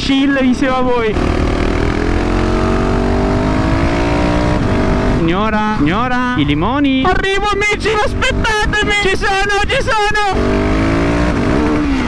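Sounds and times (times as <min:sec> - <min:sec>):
motorcycle engine pulling: 0:00.4 - 0:05.4
wind rushing over microphone: 0:01.1 - 0:06.0.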